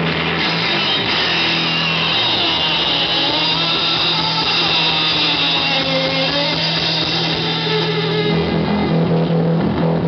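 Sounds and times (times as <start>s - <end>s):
distorted electric guitar drone: 0.0s - 10.0s
live rock band playing: 0.0s - 10.0s.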